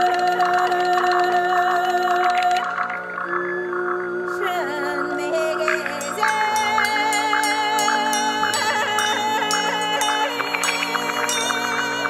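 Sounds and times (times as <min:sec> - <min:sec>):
synthesizer drone chord: 0:02.3 - 0:12.0
fast ticking percussion: 0:05.6 - 0:12.0.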